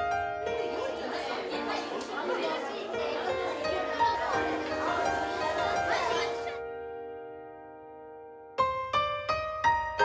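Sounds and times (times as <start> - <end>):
children talking: 0.4 - 6.6.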